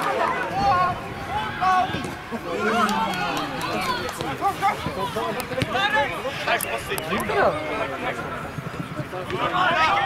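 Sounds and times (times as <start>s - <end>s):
voices calling and talking: 0.0s - 10.0s.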